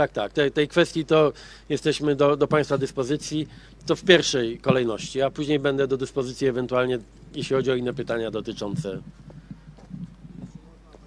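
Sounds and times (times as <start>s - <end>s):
faint distant voices: 2.4s - 11.0s.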